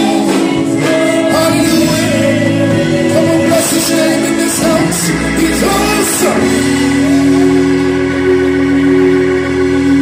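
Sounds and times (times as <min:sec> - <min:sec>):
keyboard sustained chord: 0:00.0 - 0:10.0.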